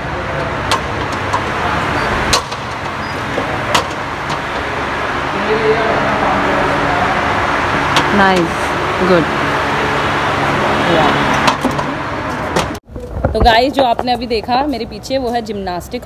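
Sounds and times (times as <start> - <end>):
echoing hall background noise: 0.0 - 14.7.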